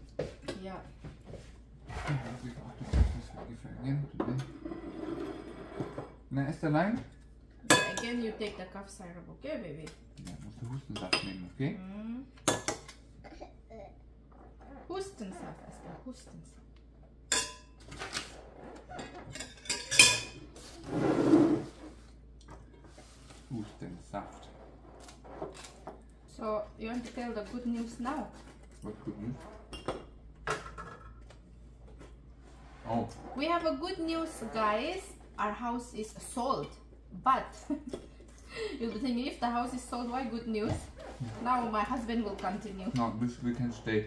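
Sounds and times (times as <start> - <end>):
scraping sound: 20.6 - 22.0.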